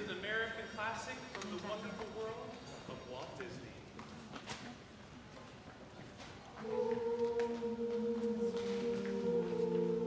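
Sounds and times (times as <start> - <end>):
a cappella vocal ensemble singing: 6.6 - 10.0.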